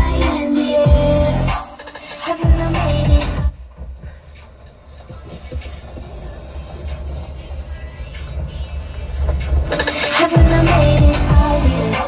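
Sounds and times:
bass-heavy electronic music from car speakers: 0:00.0 - 0:12.0.

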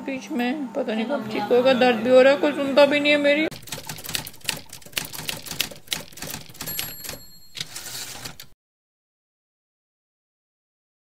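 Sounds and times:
typewriter key clacks: 0:03.5 - 0:08.5.

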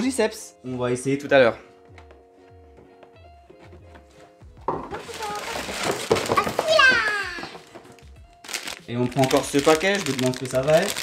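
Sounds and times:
soft music with steady beat: 0:00.0 - 0:11.0
child's high-pitched voice: 0:05.0 - 0:07.6.

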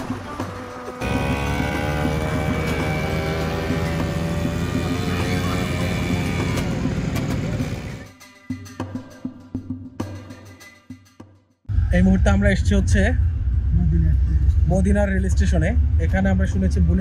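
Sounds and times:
quad bike engine running: 0:00.0 - 0:08.1.

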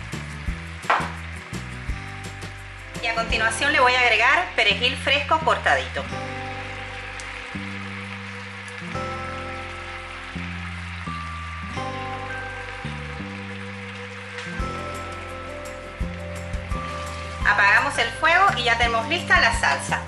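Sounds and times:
sauce simmering in a pan: 0:00.0 - 0:03.0, 0:06.2 - 0:19.8
instrumental background music: 0:00.0 - 0:20.0.

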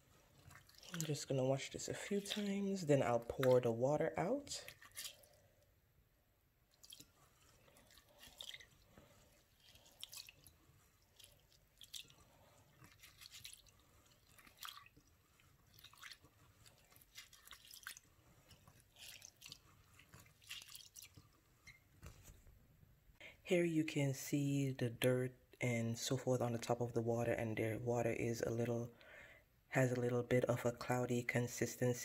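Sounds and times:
hand stirring rice in water: 0:00.0 - 0:05.6, 0:06.6 - 0:22.4.

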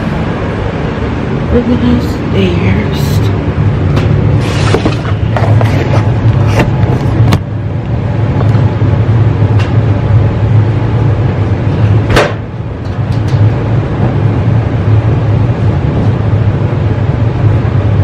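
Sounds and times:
laundry machine humming: 0:00.0 - 0:18.0.

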